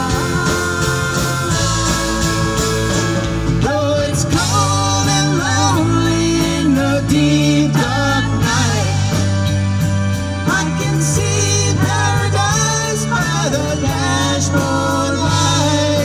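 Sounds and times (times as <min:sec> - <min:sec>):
bass line: 0:00.0 - 0:16.0
live rock band playing: 0:00.0 - 0:16.0.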